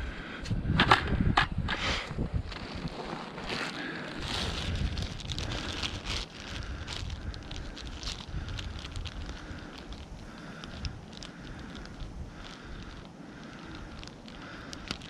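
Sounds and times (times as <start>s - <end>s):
wind rumbling on microphone: 0.0s - 15.0s
plastic bag crinkling: 2.6s - 15.0s.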